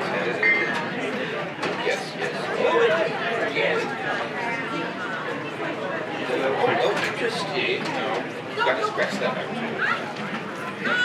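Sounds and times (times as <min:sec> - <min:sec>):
indistinct talking and chatter: 0:00.0 - 0:11.0.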